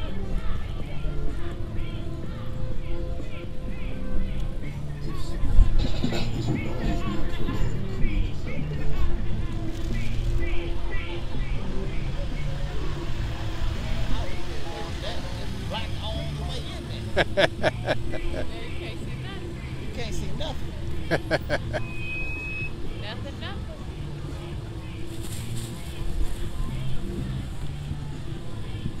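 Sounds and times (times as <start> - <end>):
chatter of spectators: 0.0 - 29.0
music with bass line: 3.7 - 25.1
vehicle engines driving slowly past: 6.5 - 29.0
high whistle-like tone: 21.8 - 22.8.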